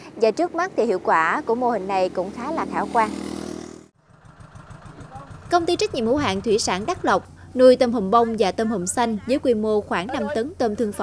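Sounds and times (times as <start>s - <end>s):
small engine humming: 0.8s - 10.9s.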